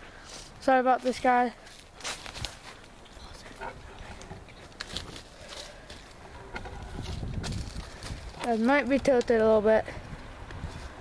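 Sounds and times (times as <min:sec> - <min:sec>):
branches rustling: 0:00.0 - 0:11.0.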